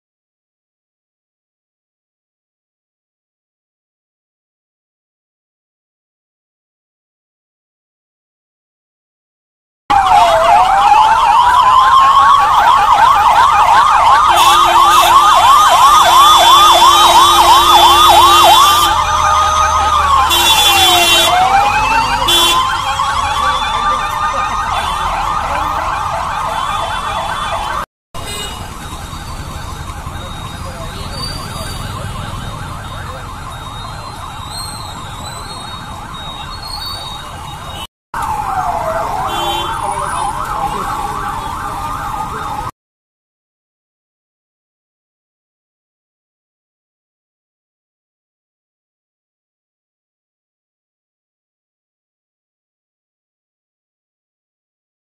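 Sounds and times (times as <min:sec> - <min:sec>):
police sirens wailing and yelping: 0:09.9 - 0:42.8.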